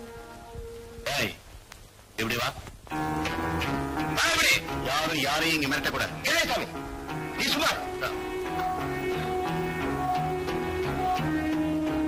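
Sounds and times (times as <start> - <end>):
film score sustained notes: 2.9 - 12.0
person speaking: 4.0 - 8.4.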